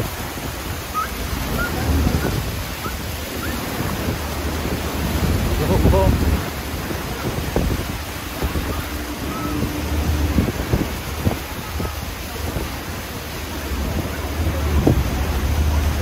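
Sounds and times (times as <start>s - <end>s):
churning river water: 0.0s - 16.0s
wind buffeting microphone: 0.0s - 16.0s.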